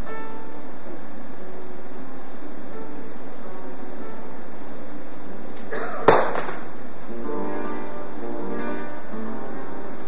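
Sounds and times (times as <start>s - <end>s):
acoustic guitar playing: 0.0s - 1.7s, 5.6s - 10.0s
sharp crack: 5.6s - 6.8s.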